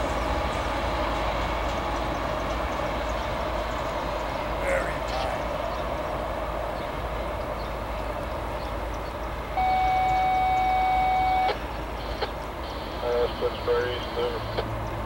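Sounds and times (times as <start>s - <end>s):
diesel locomotive running: 0.0s - 15.0s
train cars rolling on rails: 0.0s - 15.0s.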